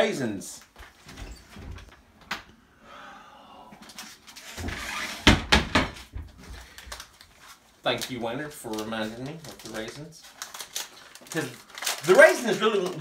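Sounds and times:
cupboard opening and shutting: 0.8 - 2.5, 4.4 - 6.6.

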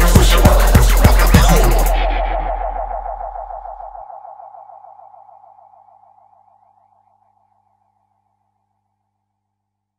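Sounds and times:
low bass tone: 0.0 - 4.4
rapidly pulsing synthesizer tone: 0.0 - 8.6.

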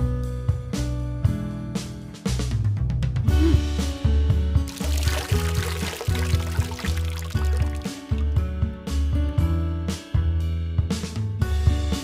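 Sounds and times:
fish splashing water: 4.7 - 8.4.

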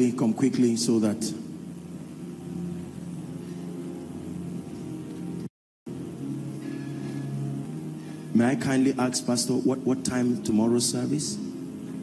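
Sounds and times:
organ chords sustained: 0.0 - 12.0.

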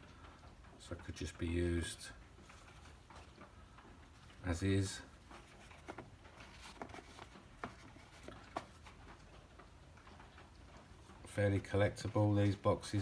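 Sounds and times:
light taps and rustles: 0.0 - 13.0.

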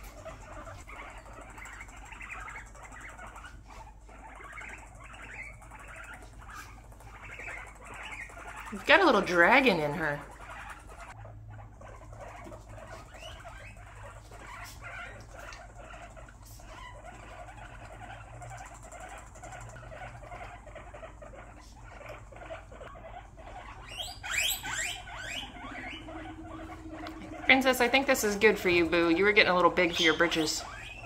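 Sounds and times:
guinea pigs calling: 0.0 - 31.0
rising squeaks: 22.0 - 31.0.

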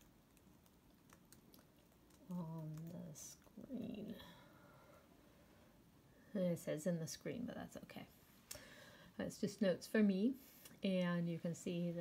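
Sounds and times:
keystrokes on computer keyboard: 0.0 - 3.5.

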